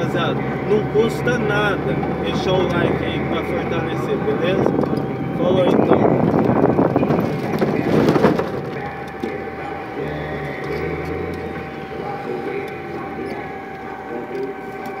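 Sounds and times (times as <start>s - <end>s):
car engine: 0.0s - 15.0s
road noise inside car: 0.0s - 15.0s.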